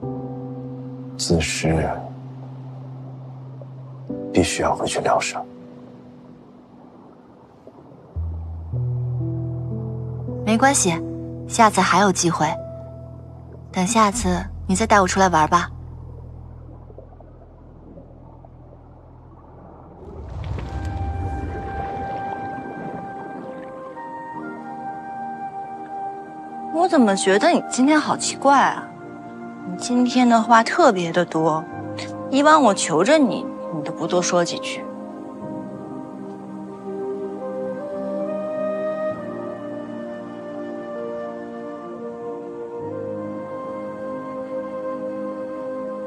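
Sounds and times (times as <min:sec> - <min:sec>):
drama score held tones: 0:00.0 - 0:46.0
deep swell: 0:15.7 - 0:24.9.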